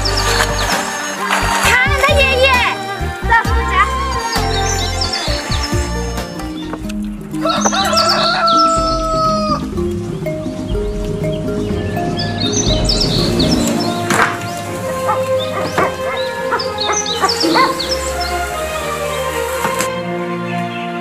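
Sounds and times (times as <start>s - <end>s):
background music: 0.0s - 21.0s
rooster crowing: 7.4s - 9.8s, 13.7s - 19.7s.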